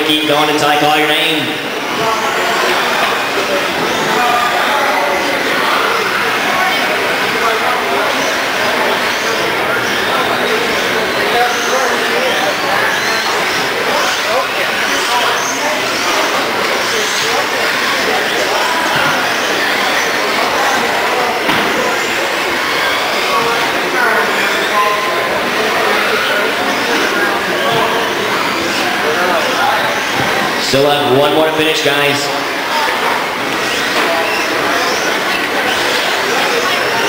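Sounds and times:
many people talking: 0.0s - 37.0s.

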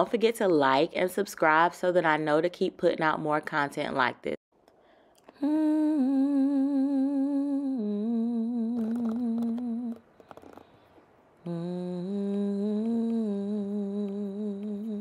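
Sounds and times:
woman humming: 5.4s - 10.0s, 11.4s - 15.0s.

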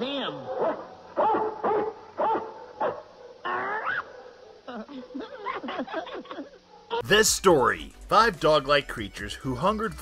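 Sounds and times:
cartoon dog barking: 0.4s - 4.7s.

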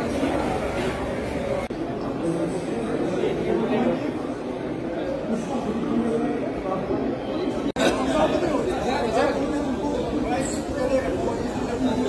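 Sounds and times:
chatter of people talking: 0.0s - 12.0s.

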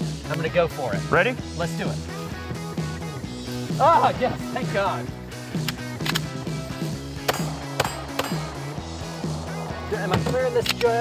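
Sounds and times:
background music: 0.0s - 11.0s
pistol shots: 7.2s - 9.6s.

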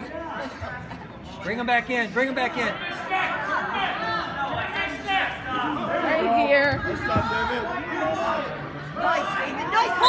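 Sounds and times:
people talking in echoing hall: 0.0s - 10.0s.

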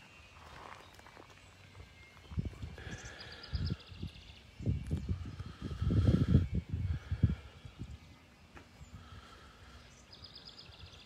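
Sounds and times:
wind buffeting microphone: 1.9s - 9.2s.

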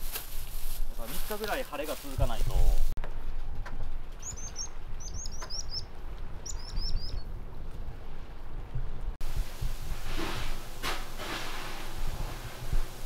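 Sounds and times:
small bird chirping: 4.2s - 7.3s.

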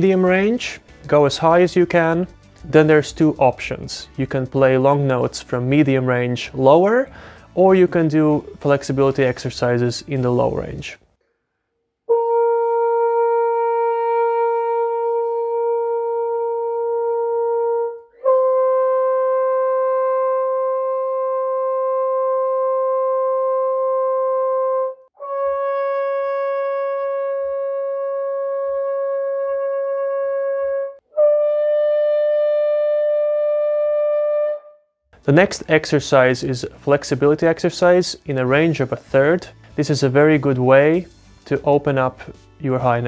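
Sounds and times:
french horn holding long notes: 12.1s - 34.8s.

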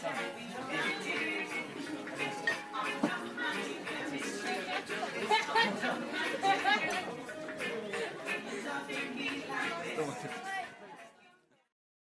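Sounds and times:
background music: 0.0s - 11.5s.

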